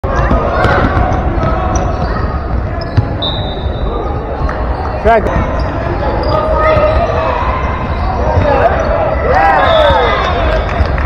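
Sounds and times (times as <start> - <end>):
spectators' voices echoing: 0.0 - 11.0
basketball bouncing on hardwood floor: 0.1 - 2.1.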